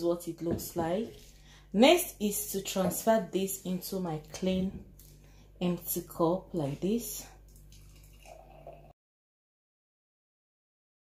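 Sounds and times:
juice pouring into a glass: 0:07.4 - 0:08.9.

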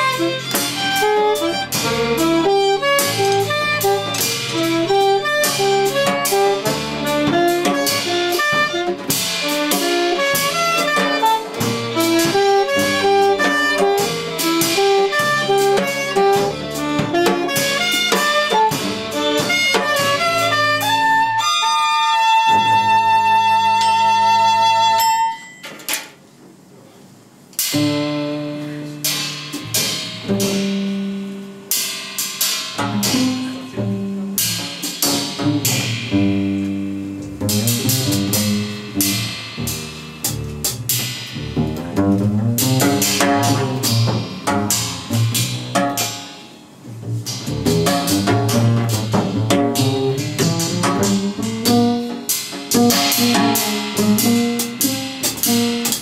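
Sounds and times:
drum hits: 0:00.0 - 0:21.4, 0:27.6 - 0:56.0
violin: 0:00.0 - 0:25.1
alto saxophone: 0:00.0 - 0:25.3, 0:27.7 - 0:29.3, 0:32.9 - 0:34.6, 0:47.2 - 0:56.0
walking bass line: 0:35.3 - 0:46.0, 0:46.9 - 0:52.2.

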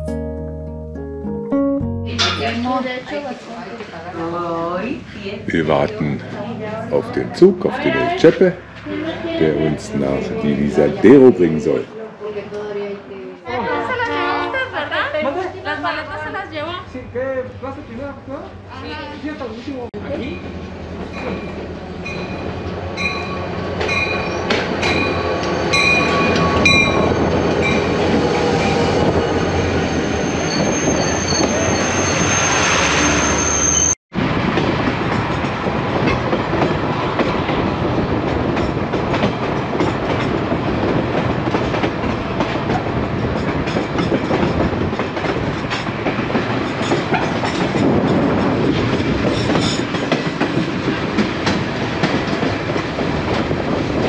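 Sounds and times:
moving train rumble and clatter: 0:02.2 - 0:54.0
train brakes squealing: 0:20.2 - 0:34.0.

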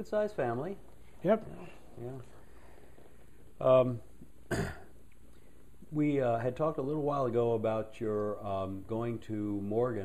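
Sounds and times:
person clearing throat: 0:04.5 - 0:05.0.

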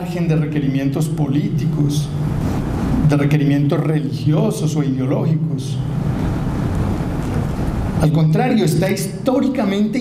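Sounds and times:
steady rushing noise: 0:00.0 - 0:09.6
person speaking: 0:07.9 - 0:10.0.

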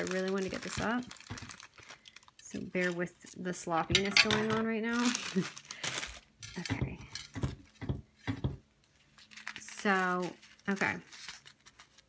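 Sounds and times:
plastic sleeve rustling: 0:00.0 - 0:12.0.

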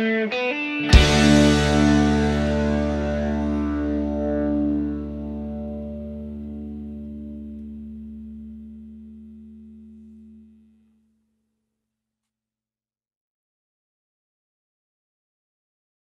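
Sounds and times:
distorted electric guitar chord: 0:00.0 - 0:10.7
low bass: 0:00.9 - 0:10.9.

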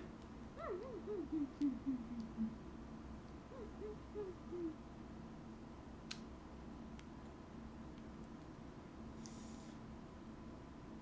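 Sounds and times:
woman humming softly: 0:00.6 - 0:02.6, 0:03.5 - 0:04.8.

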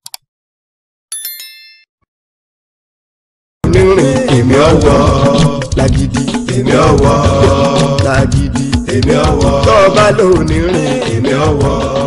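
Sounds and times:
notification bell chime: 0:01.1 - 0:01.9.

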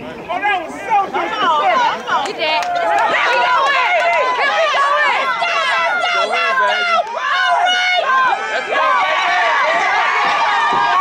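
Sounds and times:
spectators yelling and cheering: 0:00.3 - 0:11.0.

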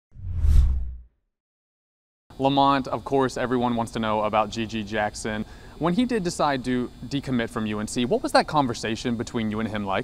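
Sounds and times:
deep whoosh: 0:00.1 - 0:01.1.

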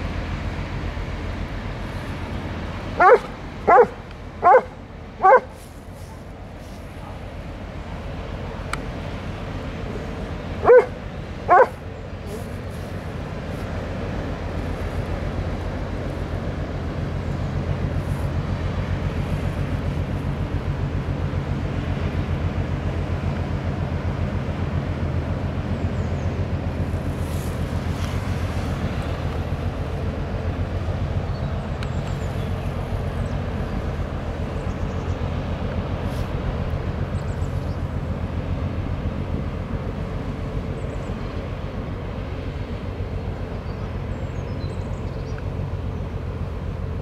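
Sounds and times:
ship diesel engine drone: 0:00.0 - 0:47.0
dog barking: 0:03.0 - 0:05.5, 0:10.6 - 0:11.8.

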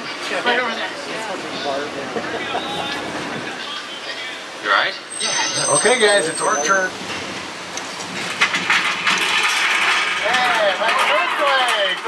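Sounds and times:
tram rolling: 0:00.0 - 0:12.0.

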